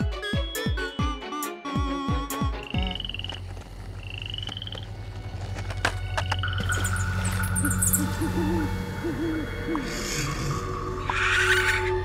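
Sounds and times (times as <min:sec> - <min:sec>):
frog calls trilling: 0:06.5 - 0:12.0.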